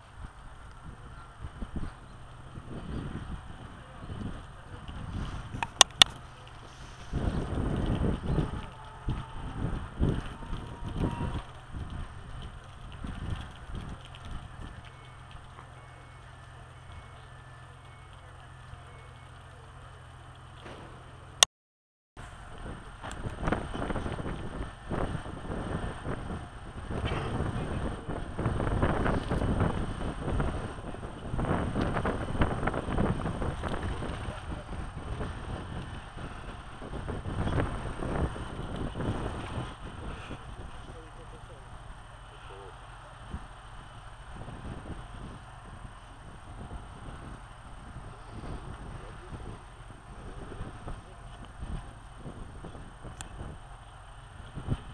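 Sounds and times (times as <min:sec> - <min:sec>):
distant diesel railcar idling: 0:00.0 - 0:21.4, 0:22.2 - 0:54.9
outdoor noise: 0:00.0 - 0:21.5, 0:22.2 - 0:54.9
sharp clicks: 0:05.6 - 0:06.6.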